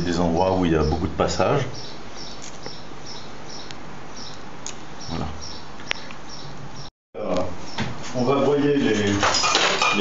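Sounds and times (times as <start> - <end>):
dishes and cutlery clinking: 8.9 - 10.0.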